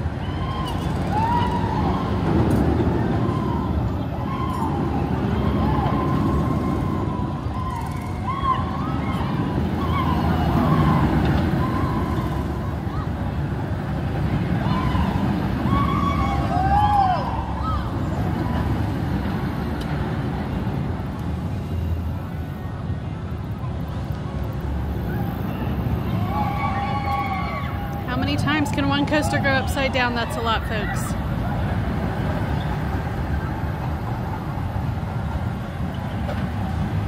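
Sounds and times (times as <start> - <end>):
distant shouts: 0.0 - 18.9, 24.9 - 34.5
roller coaster rumbling on track: 0.0 - 37.0.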